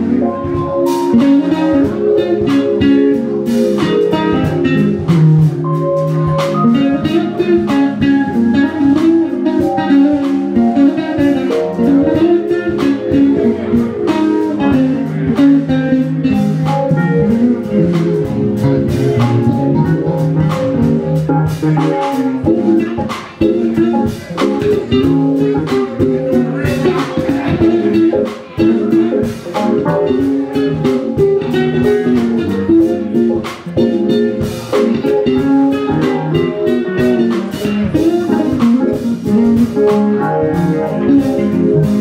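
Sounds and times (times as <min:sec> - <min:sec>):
drum kit: 0:00.0 - 0:42.0
electric bass lines: 0:00.0 - 0:42.0
jazz-funk band playing: 0:00.0 - 0:42.0.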